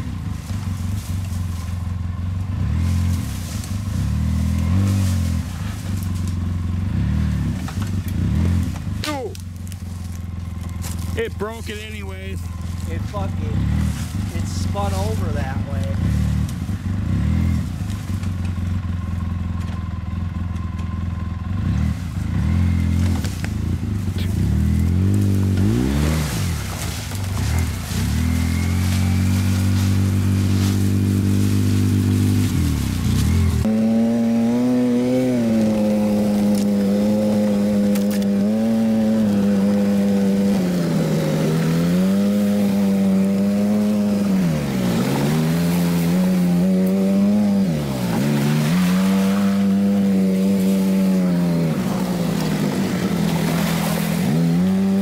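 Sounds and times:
vehicle engine revving: 0:00.0 - 0:55.0.

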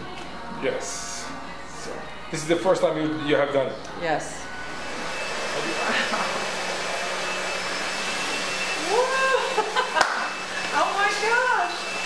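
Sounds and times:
hair dryer blowing: 0:04.4 - 0:12.0.

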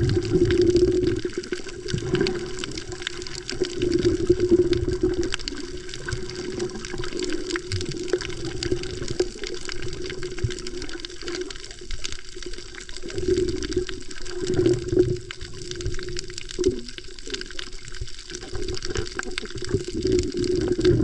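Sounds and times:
crackle of faint clicks: 0:00.0 - 0:21.0
muffled underwater water movement: 0:00.0 - 0:21.0.

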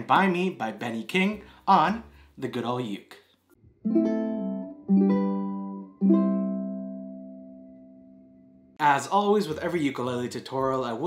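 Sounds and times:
ukulele chords strummed: 0:03.7 - 0:08.7.

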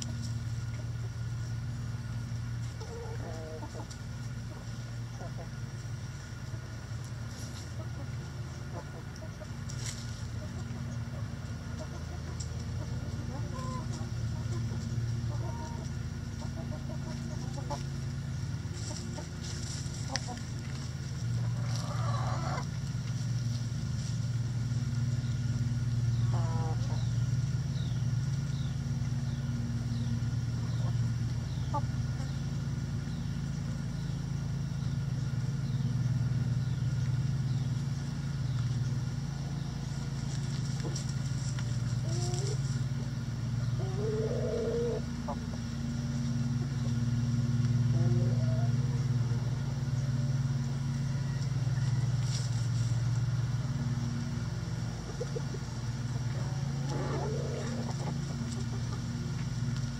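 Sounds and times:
chickens clucking: 0:00.0 - 0:59.9
low mechanical hum: 0:00.0 - 0:59.9.

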